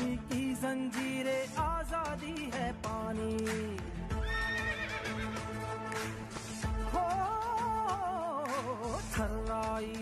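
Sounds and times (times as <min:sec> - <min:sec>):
patriotic song backing music: 0:00.0 - 0:10.0
horse whinnying: 0:04.2 - 0:05.5.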